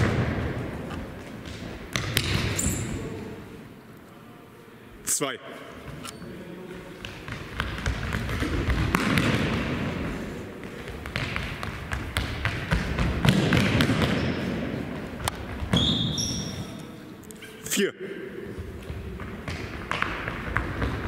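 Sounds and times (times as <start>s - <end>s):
shoe squeak: 2.5s - 3.1s, 15.7s - 17.6s
running footsteps in a hall: 5.6s - 17.1s, 18.4s - 21.0s.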